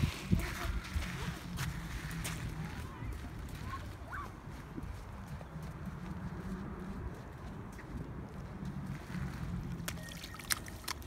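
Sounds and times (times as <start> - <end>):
footsteps splashing in shallow water: 0.0 - 11.0
wind buffeting microphone: 0.0 - 11.0.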